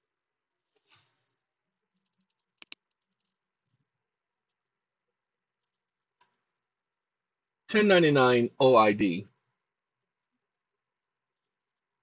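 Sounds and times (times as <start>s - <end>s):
computer mouse clicks: 2.0s - 3.8s, 5.6s - 6.4s.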